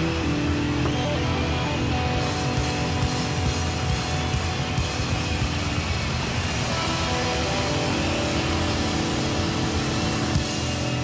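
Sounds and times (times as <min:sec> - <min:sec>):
distorted electric guitars droning: 0:00.0 - 0:11.0.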